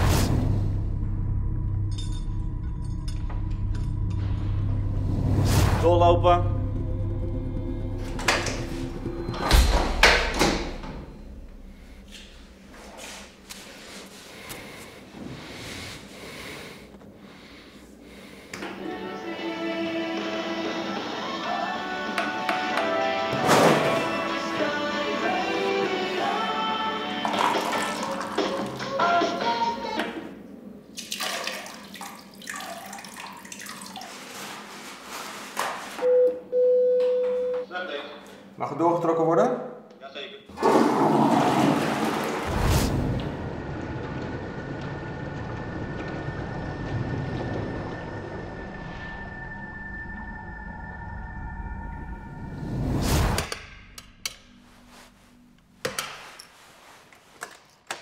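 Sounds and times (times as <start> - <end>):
background music: 0.0 - 11.8, 18.7 - 30.4
heavy door shutting with thud: 9.3 - 11.1
intercom beeps: 36.0 - 38.1.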